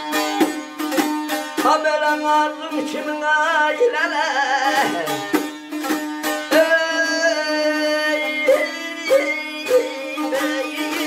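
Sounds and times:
plucked strings: 0:00.0 - 0:11.0
person singing: 0:01.6 - 0:05.5, 0:06.4 - 0:11.0.

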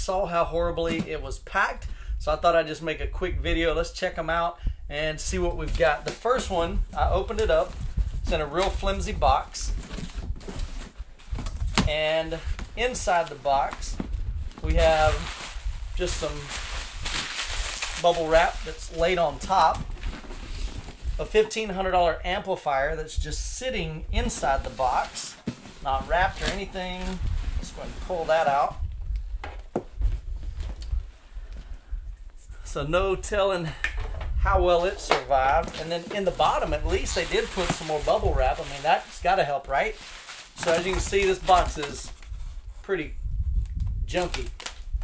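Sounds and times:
cardboard scraping and rustling: 0:05.6 - 0:21.5, 0:24.2 - 0:28.8, 0:34.7 - 0:42.2.

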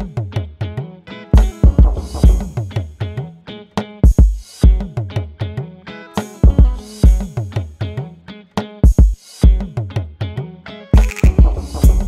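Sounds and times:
background music with drum beat: 0:00.0 - 0:12.0.

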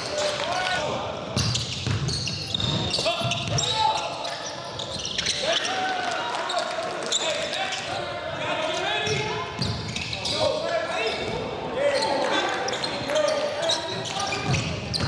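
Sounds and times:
reverberant gym background: 0:00.0 - 0:06.6
basketball bouncing: 0:01.4 - 0:03.6
sneakers squeaking on court: 0:01.4 - 0:05.8, 0:09.0 - 0:15.0.

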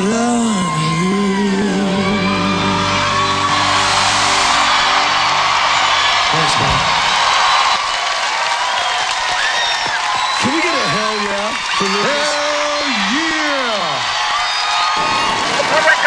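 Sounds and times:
audience whooping and cheering: 0:00.0 - 0:16.0
rock band playing: 0:02.4 - 0:07.8.

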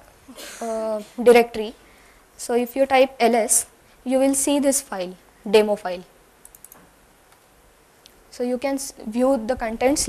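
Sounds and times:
computer mouse clicks: 0:06.4 - 0:08.2.

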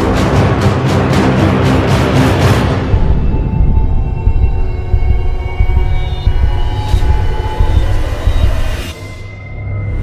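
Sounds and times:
deep rumbling drone: 0:02.5 - 0:10.0.

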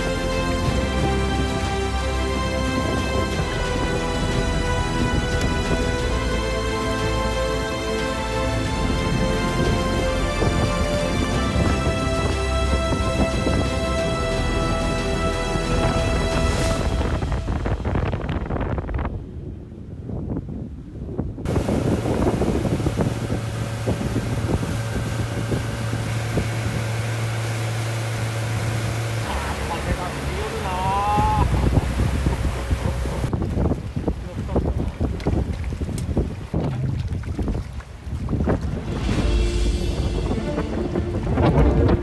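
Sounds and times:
water rushing past boat: 0:00.0 - 0:19.7, 0:20.4 - 0:42.0
boat engine humming: 0:00.0 - 0:20.1, 0:21.5 - 0:42.0
wind buffeting microphone: 0:00.0 - 0:42.0.

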